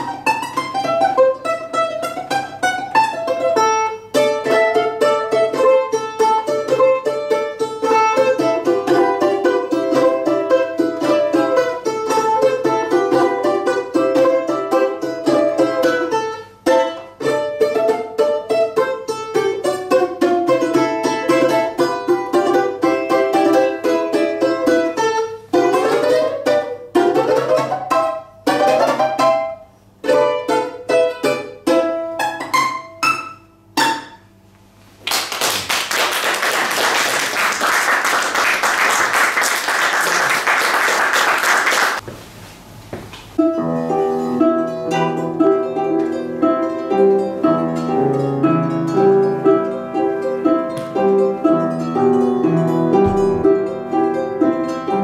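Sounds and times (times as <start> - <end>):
balalaika melody: 0.0 - 34.8, 43.4 - 55.0
audience applause: 35.0 - 42.0.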